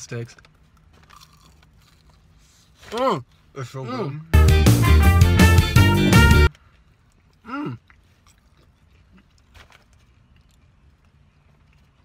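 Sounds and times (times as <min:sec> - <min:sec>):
crunching and chewing: 0:00.1 - 0:03.5, 0:06.5 - 0:12.0.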